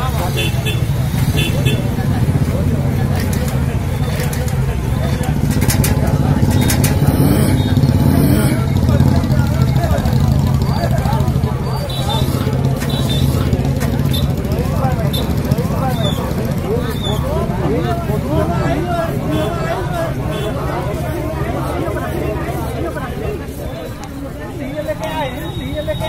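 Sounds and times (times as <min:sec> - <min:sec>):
people talking indistinctly: 0:00.0 - 0:26.0
engine running with low drone: 0:01.0 - 0:23.2.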